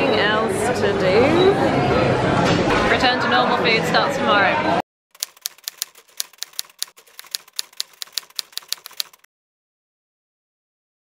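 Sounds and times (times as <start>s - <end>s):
typewriter key clicks: 5.2s - 9.3s.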